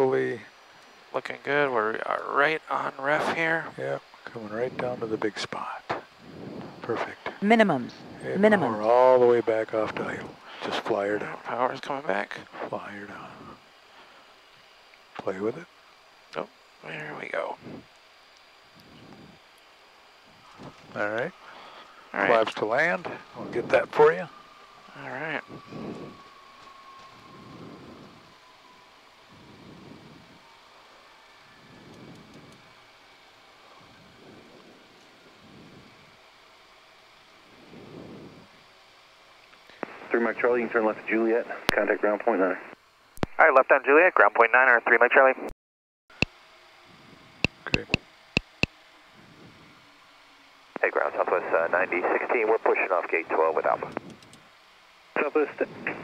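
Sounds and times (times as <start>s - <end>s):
radio hiss: 0.0s - 15.7s, 16.4s - 26.2s, 39.6s - 45.5s, 47.4s - 49.6s, 50.7s - 54.2s, 55.1s - 56.0s
jet engine whine: 0.0s - 45.2s, 46.3s - 56.0s
radio-filtered voice: 1.2s - 6.1s, 6.8s - 13.6s, 15.2s - 15.7s, 16.4s - 17.8s, 20.9s - 24.3s, 24.9s - 26.0s, 39.8s - 45.5s, 47.6s - 48.0s, 50.8s - 54.0s, 55.2s - 56.0s
aircraft cabin noise: 2.9s - 14.4s, 20.3s - 28.5s, 47.5s - 48.7s.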